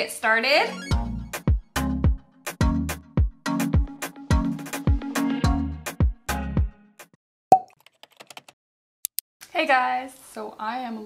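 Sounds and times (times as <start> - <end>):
electronic music with kick drum: 0.8 - 6.7.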